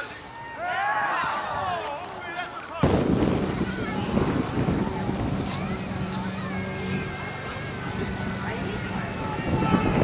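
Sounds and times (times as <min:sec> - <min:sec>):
loud rumbling noise: 0:02.8 - 0:10.0
distant men shouting: 0:05.4 - 0:10.0.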